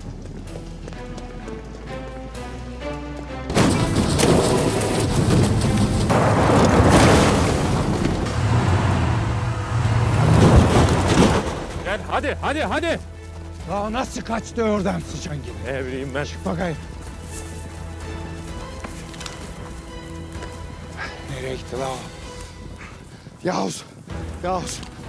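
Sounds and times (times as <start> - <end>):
dramatic music: 0.0 - 25.0
car crashing down a slope: 3.5 - 12.0.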